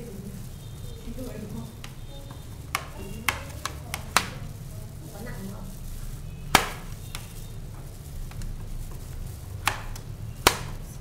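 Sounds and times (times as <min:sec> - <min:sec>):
food being mixed by hand in pot: 0:00.0 - 0:11.0.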